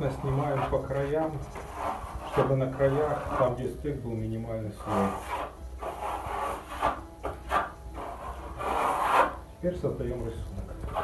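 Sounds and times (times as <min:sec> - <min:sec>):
spatula scraping plaster on wall: 0:00.0 - 0:03.7, 0:04.8 - 0:09.4.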